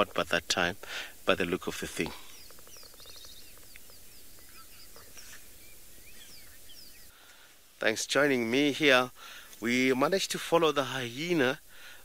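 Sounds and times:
bird trill: 2.0s - 7.1s
birds chirping and whistling: 2.0s - 7.2s.

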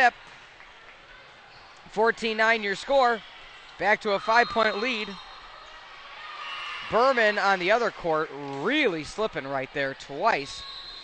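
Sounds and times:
crowd and room noise: 0.0s - 11.0s
commentator speaking: 3.8s - 5.2s.

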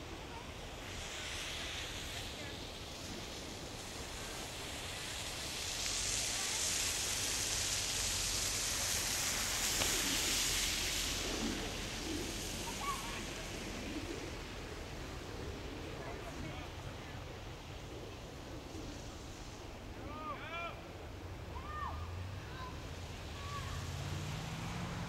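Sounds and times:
faint distant voices: 0.0s - 25.0s
outdoor hiss: 0.0s - 25.0s.

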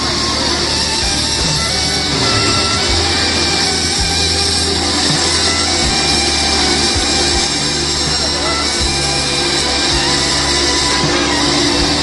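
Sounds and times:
machine whirring: 0.0s - 12.0s.

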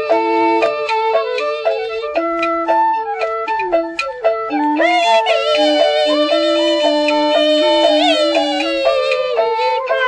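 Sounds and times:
high sliding melody: 0.0s - 10.0s
light percussion strikes: 0.0s - 10.0s
traditional opera music: 0.0s - 10.0s.

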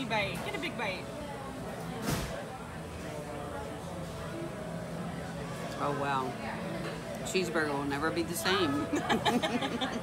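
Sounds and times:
faint voices of diners: 0.0s - 10.0s
steady background hum: 0.0s - 10.0s.

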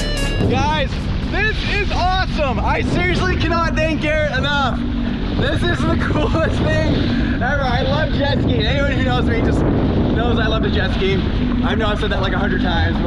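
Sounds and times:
jet ski running: 0.0s - 13.0s
water rushing: 0.0s - 13.0s
wind buffeting microphone: 0.3s - 13.0s.

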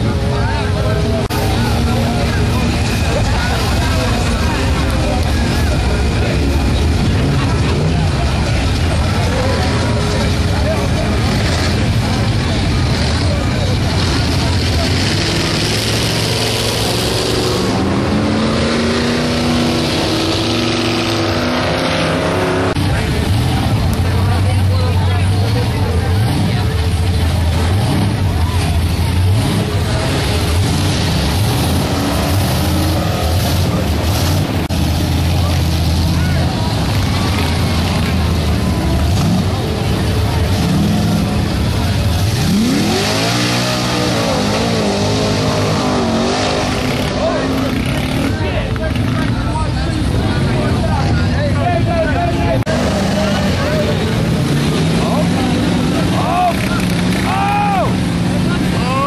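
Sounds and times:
off-road truck engines rumbling: 0.0s - 59.0s
truck revving hard: 0.0s - 59.0s.

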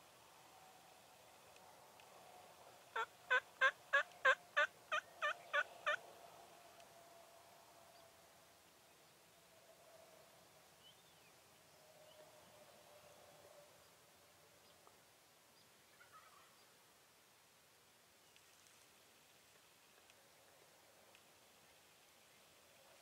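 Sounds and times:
turkey yelps: 3.0s - 6.0s, 16.0s - 16.5s.

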